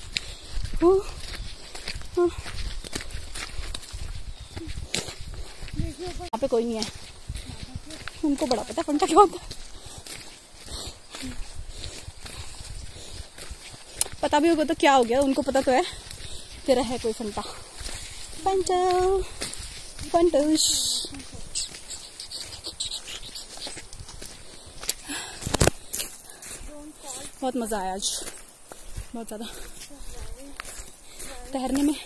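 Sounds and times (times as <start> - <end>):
wind buffeting microphone: 0.0 - 21.8
footsteps on a trail: 0.0 - 32.0
woman's voice: 0.7 - 1.3, 2.1 - 2.5, 5.7 - 9.6, 14.0 - 17.7, 18.3 - 19.4, 20.0 - 21.8, 26.6 - 28.4, 29.0 - 32.0.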